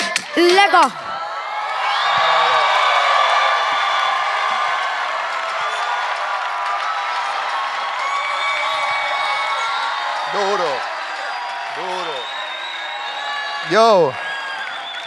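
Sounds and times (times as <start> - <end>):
audience cheering and applauding: 0.4 - 15.0.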